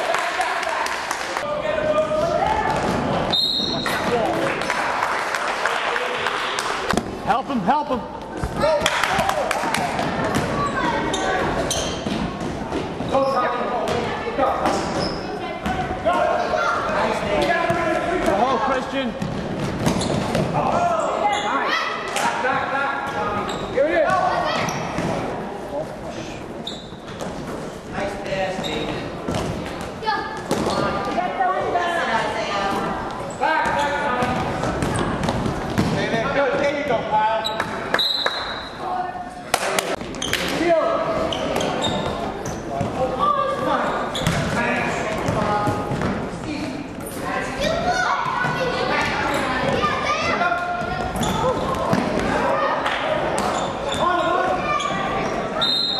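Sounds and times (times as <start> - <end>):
voices calling out in hall: 28.2 - 55.9.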